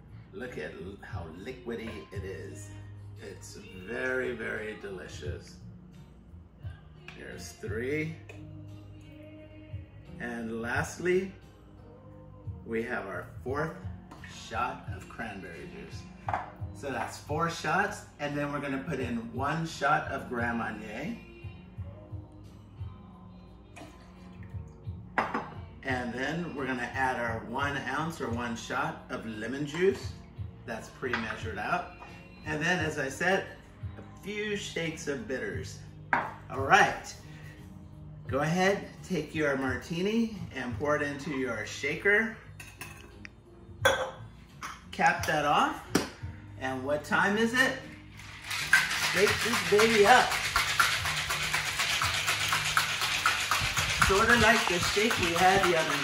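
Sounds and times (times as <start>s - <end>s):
faint background music: 0.0s - 56.0s
bottle knocking on countertop: 16.3s - 16.5s, 25.2s - 25.6s, 36.1s - 36.4s
glass bottle clinking: 25.2s - 25.6s, 43.8s - 44.8s, 48.4s - 56.0s
cocktail shaker rattling: 48.1s - 56.0s.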